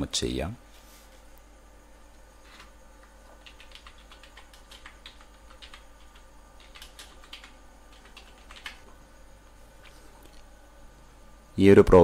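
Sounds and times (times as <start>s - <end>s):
computer keyboard typing: 2.5s - 9.0s.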